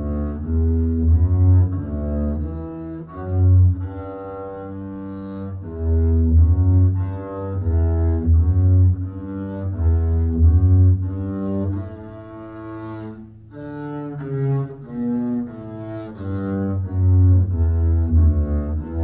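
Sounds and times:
bowed double bass melody: 0:00.0 - 0:19.0.

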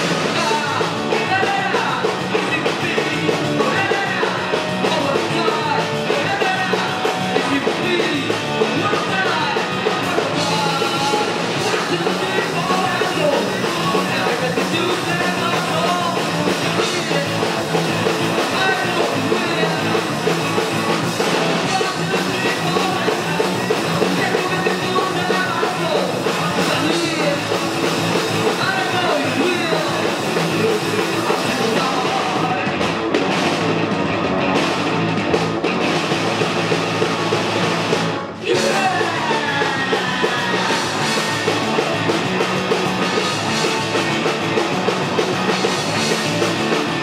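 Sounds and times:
bass guitar: 0:00.0 - 0:47.0
drums: 0:00.0 - 0:47.0
electric guitar: 0:00.0 - 0:47.0
rock band playing: 0:00.0 - 0:47.0.

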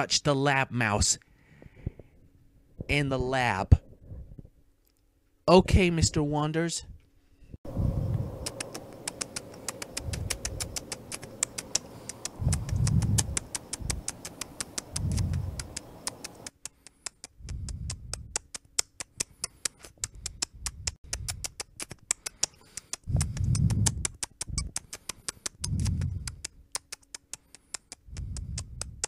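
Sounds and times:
low rumbling noise: 0:07.7 - 0:09.1
cartoon nibbling clicks: 0:08.4 - 0:29.0.

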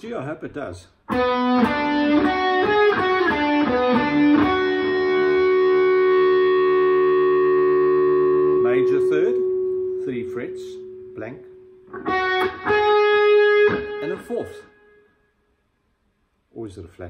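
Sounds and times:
electric guitar notes: 0:01.1 - 0:15.2.

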